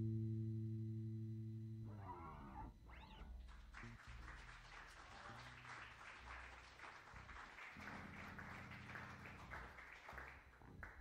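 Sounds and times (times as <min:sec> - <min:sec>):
electric bass guitar note: 0:00.0 - 0:03.4
soft applause: 0:03.1 - 0:11.0.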